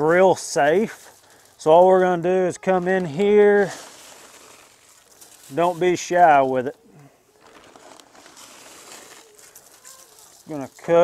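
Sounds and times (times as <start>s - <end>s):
granules sprinkling rustle: 0.0s - 11.0s.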